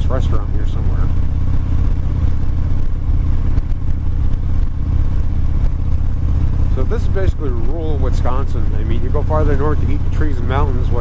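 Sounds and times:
motorcycle engine running: 0.0 - 11.0
wind rumble: 0.0 - 11.0.

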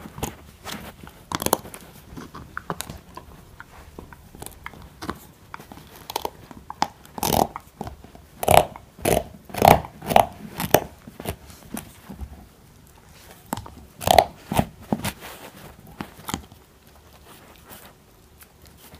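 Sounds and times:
puppy gnawing bone: 0.0 - 18.9.

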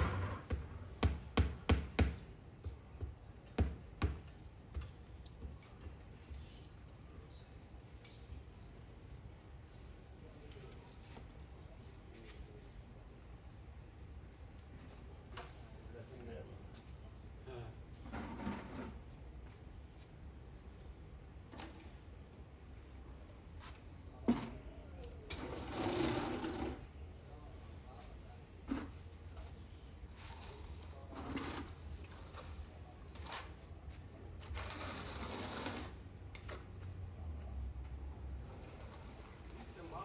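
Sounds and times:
sharp knocks: 0.0 - 2.3.

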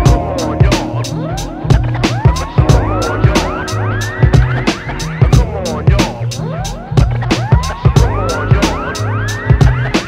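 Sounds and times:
hip-hop drum beat: 0.0 - 10.0.

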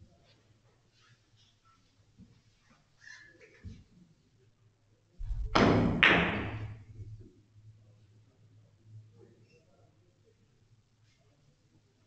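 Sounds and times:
billiard balls knocking together: 5.2 - 7.2
cue striking billiard ball: 5.2 - 7.2.

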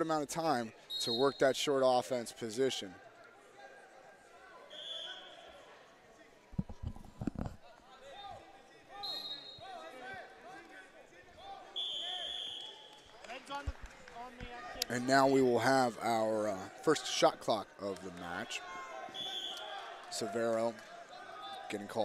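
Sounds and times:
referee whistle: 0.8 - 1.6, 4.7 - 5.6, 8.9 - 9.8, 11.7 - 12.8, 19.1 - 19.8.

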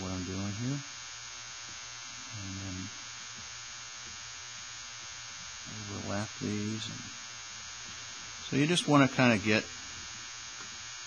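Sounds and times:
background hiss: 0.0 - 11.0
faint low hum: 0.0 - 11.0.

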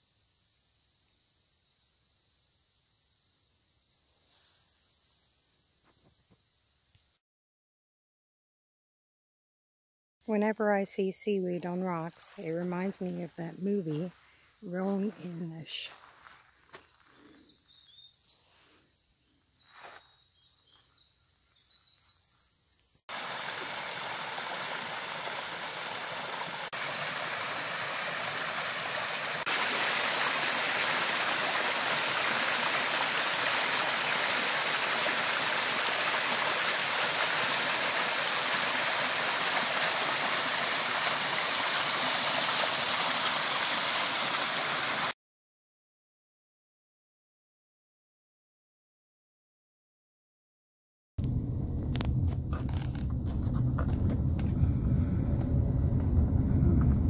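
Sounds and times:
brook water rushing over stones: 23.1 - 45.1.

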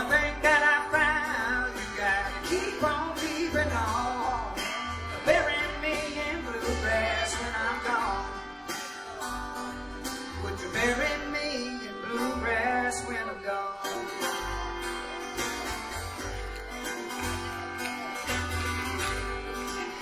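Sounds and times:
fiddle melody: 0.0 - 20.0
plucked upright bass: 0.0 - 20.0
strummed acoustic guitar: 0.0 - 20.0.

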